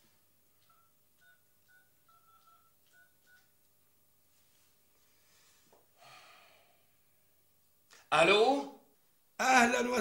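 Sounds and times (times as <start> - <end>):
phone keypad beeps: 0.6 - 3.5.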